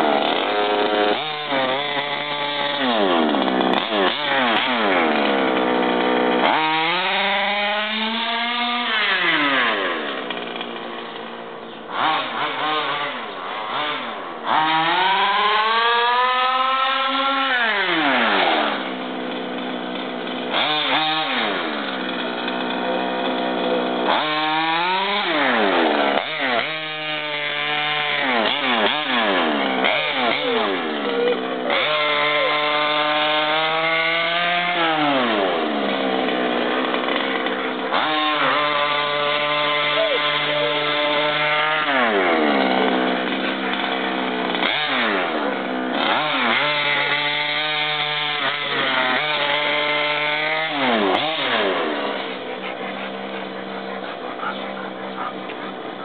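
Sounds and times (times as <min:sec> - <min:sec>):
model buggy engine revving: 0:00.0 - 0:56.0.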